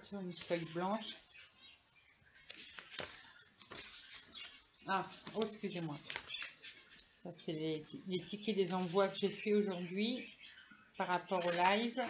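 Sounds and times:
paper and plastic packaging rustling: 2.4s - 7.1s.

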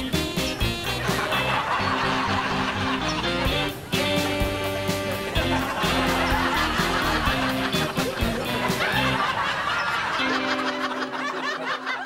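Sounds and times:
background music steady note: 0.0s - 12.0s
people laughing: 0.0s - 12.0s.

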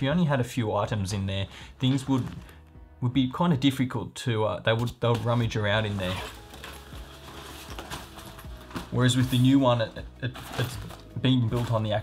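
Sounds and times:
fabric backpack rustling: 1.7s - 2.7s, 5.1s - 12.0s.

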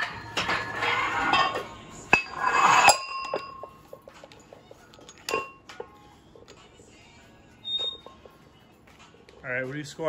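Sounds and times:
high metallic ring: 0.0s - 3.9s
weight plates clanking: 0.0s - 3.9s.

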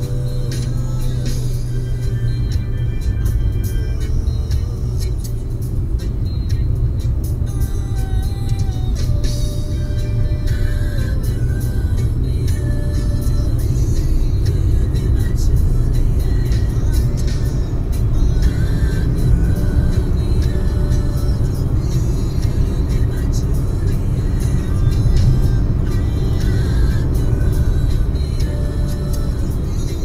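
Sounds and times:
car engine and road rumble: 0.0s - 30.0s
music with singing: 0.0s - 30.0s.

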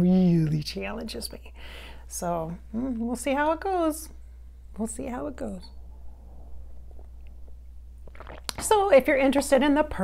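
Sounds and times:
steady low hum: 0.0s - 10.0s
sips and swallows: 6.7s - 8.6s.

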